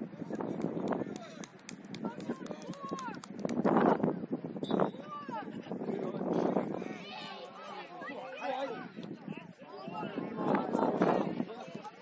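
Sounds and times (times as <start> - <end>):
players and spectators shouting: 6.6 - 12.0.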